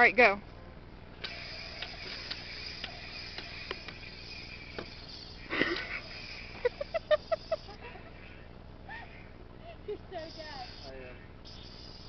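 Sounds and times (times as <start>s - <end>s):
toy lightsabers clacking: 1.2s - 7.0s
steady high hiss: 1.2s - 12.0s.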